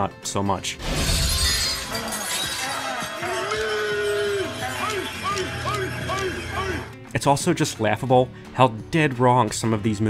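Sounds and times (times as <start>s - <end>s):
music: 0.0s - 10.0s
glass breaking: 0.8s - 3.8s.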